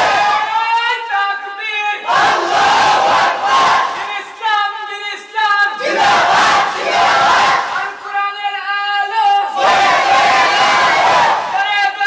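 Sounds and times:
crowd shouting in unison: 0.0s - 0.9s, 1.9s - 4.5s, 5.7s - 8.0s, 9.4s - 12.0s.

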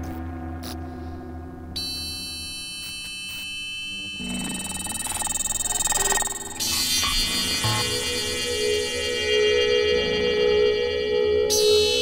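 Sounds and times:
bright high synth tones: 1.8s - 12.0s
sustained synthesizer tones: 3.6s - 12.0s.

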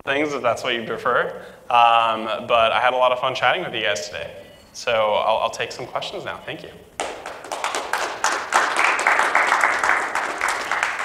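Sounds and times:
audience applauding: 7.0s - 11.0s.

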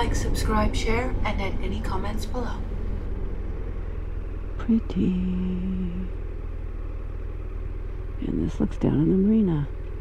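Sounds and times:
motorcycle engine running low: 0.0s - 10.0s.

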